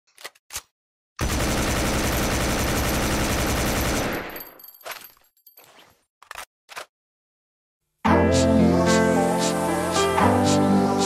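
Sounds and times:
rapid automatic gunfire: 1.2 - 4.5.

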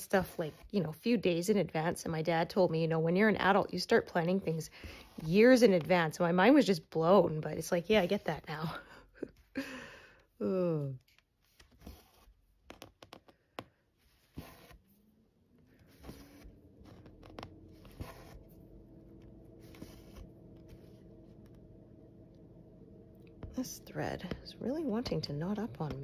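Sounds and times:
thread rasping through cloth: 11.0 - 14.9, 15.6 - 18.6
steady low hum: 14.2 - 26.0.

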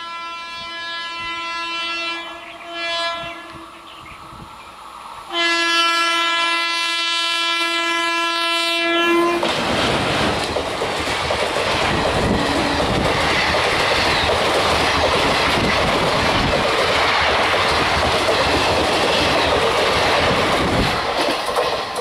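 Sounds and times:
locomotive horn: 0.0 - 3.7, 5.3 - 9.5
train passing close by: 0.0 - 22.0.

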